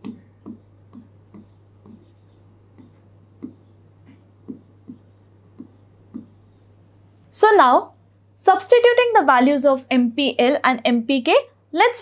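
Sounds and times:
stylus scratchy strokes: 0.0s - 6.7s
stylus tapping on touchscreen: 0.0s - 6.7s.

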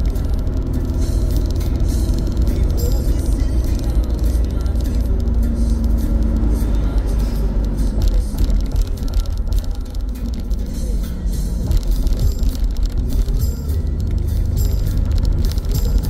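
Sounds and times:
car road rumble: 0.0s - 16.0s
music playing: 0.0s - 16.0s.

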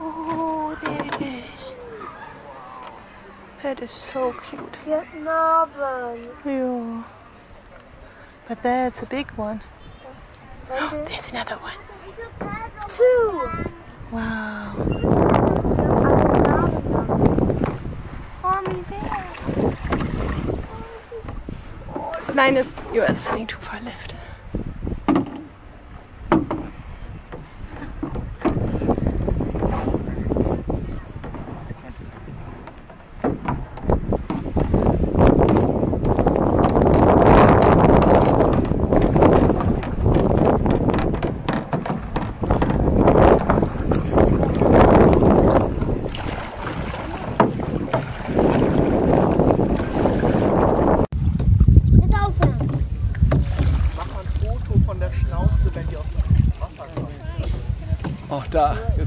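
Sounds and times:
faint indistinct voices: 0.0s - 17.8s
water lapping around canoes: 0.0s - 59.0s
wind on microphone: 12.2s - 25.3s, 26.1s - 59.0s.

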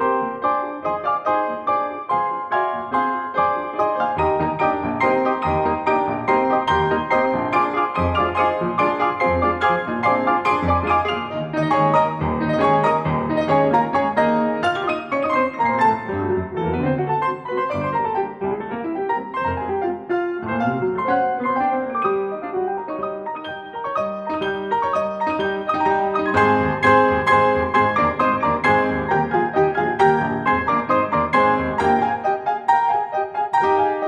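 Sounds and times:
several pianos playing together: 0.0s - 34.0s.

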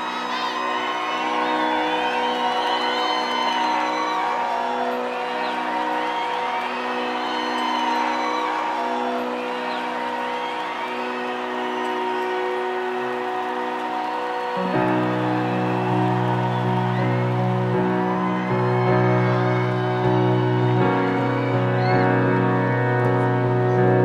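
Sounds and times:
crowd cheering and whistling: 0.0s - 24.0s
crowd whooping: 0.0s - 24.0s.

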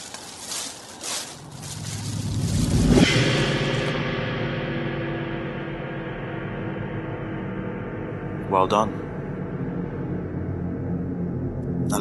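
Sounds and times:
low sustained drone: 1.8s - 12.0s.

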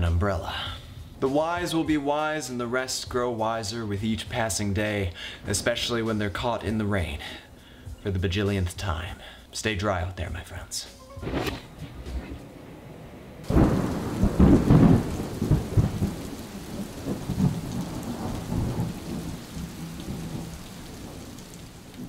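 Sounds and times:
steady rain: 0.0s - 8.1s, 11.3s - 22.0s
thunderclap with deep rumble: 11.2s - 22.0s.

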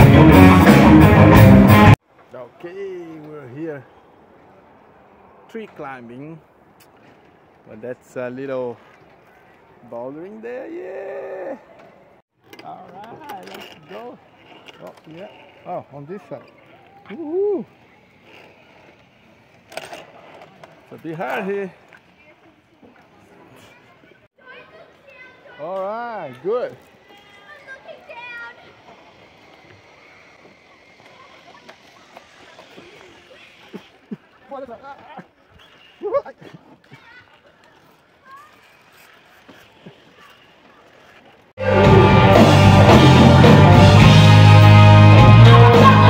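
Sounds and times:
live rock band playing: 0.0s - 2.0s, 41.6s - 46.0s.

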